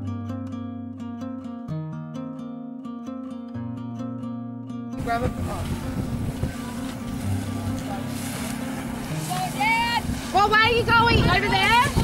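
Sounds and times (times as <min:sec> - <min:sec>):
plucked-string music: 0:00.0 - 0:12.0
wind: 0:00.0 - 0:12.0
boat engine droning: 0:05.0 - 0:12.0
water noise: 0:05.0 - 0:12.0.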